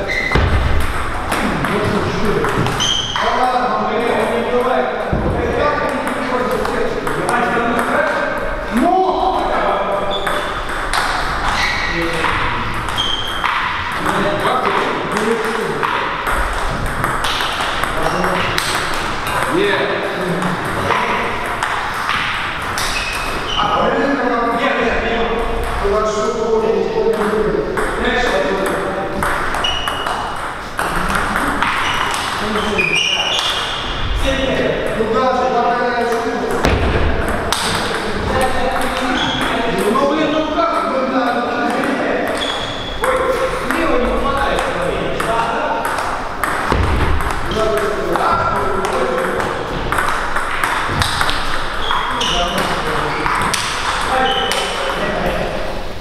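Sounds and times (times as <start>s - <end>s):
people talking: 0.0s - 0.6s, 1.3s - 16.9s, 17.8s - 21.8s, 23.5s - 50.2s, 51.8s - 55.8s
table tennis ball clicking: 48.8s - 52.1s.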